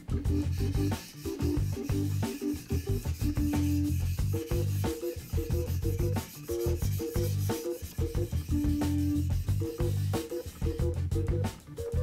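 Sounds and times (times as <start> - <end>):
background music with bass line: 0.0 - 12.0
blade rubbing on wet whetstone: 0.3 - 10.5.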